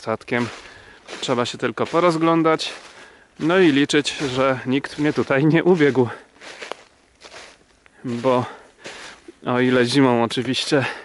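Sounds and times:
footsteps in dry leaves: 0.0s - 11.0s.

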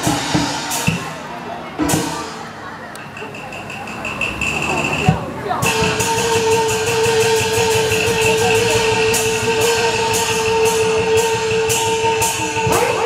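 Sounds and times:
percussion strikes: 0.0s - 13.0s.

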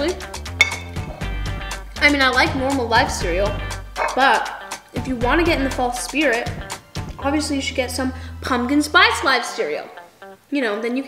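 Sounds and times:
background music: 0.0s - 11.0s
spoon clinking on ceramic bowl: 0.6s - 1.0s.

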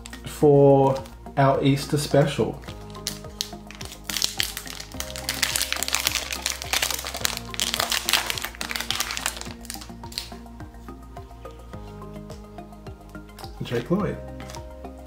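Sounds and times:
background music: 0.0s - 15.0s
foil wrapper crinkling: 2.9s - 10.4s.

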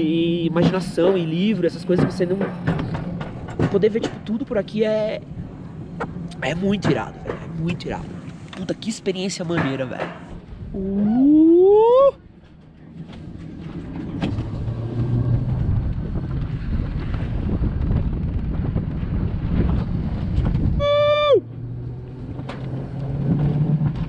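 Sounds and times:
sled rolling on metal rail: 0.0s - 10.6s, 12.3s - 20.8s
rider whooping: 10.8s - 12.2s, 20.7s - 21.5s
rider shouting: 20.8s - 21.5s.

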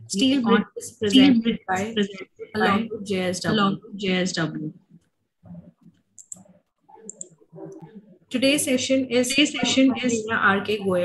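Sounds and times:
faint broken voices over video call: 0.0s - 11.0s.

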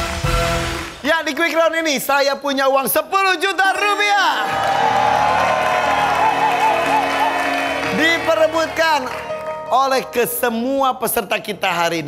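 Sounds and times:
audience clapping and cheering: 0.0s - 1.8s, 3.5s - 10.3s.

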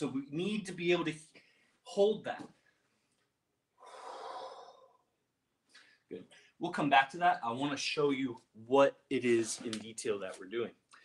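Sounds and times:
person breathing out: 3.8s - 5.1s.

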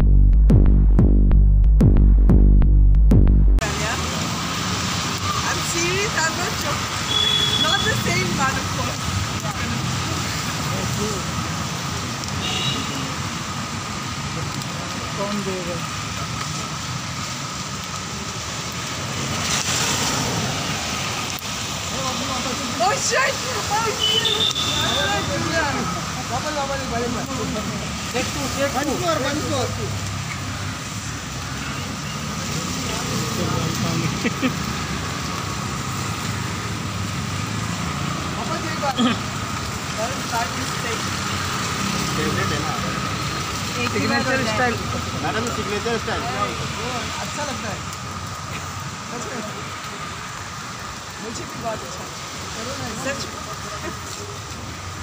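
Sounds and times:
road traffic on wet street: 3.1s - 55.0s
rain: 3.6s - 55.0s.

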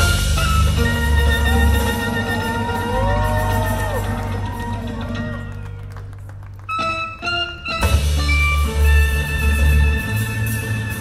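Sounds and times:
jazz band sustained chord: 0.0s - 6.0s
audience whooping: 1.1s - 6.1s.

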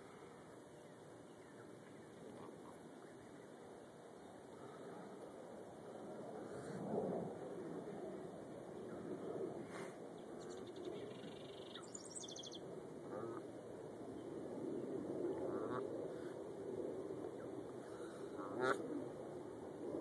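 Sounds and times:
outdoor background noise: 0.0s - 20.0s
high chirping bird trill: 10.4s - 12.6s.

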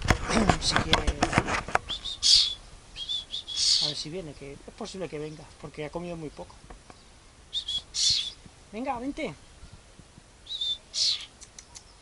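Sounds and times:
person whistling calls: 1.9s - 3.8s, 7.5s - 8.4s, 10.5s - 11.3s.

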